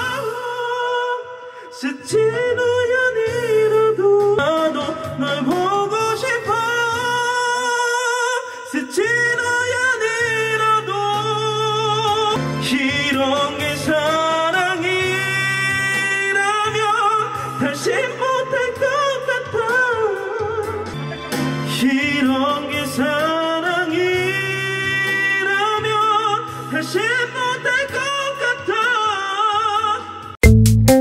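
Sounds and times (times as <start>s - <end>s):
man singing high notes: 0.0s - 30.3s
instrumental backing track: 0.0s - 31.0s.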